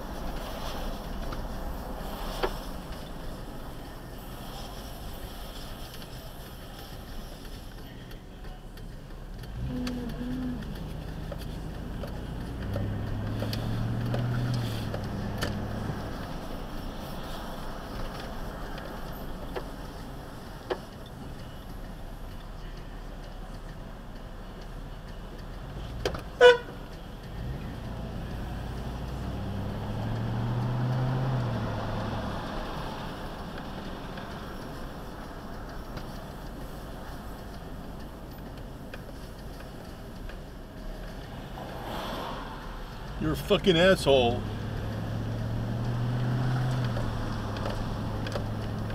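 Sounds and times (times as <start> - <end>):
car engine hum from cabin: 0.0 - 48.9
car horn toot: 26.4 - 26.9.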